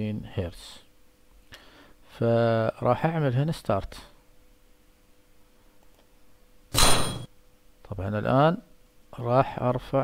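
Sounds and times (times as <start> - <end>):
tuning fork clang: 6.8 - 7.3.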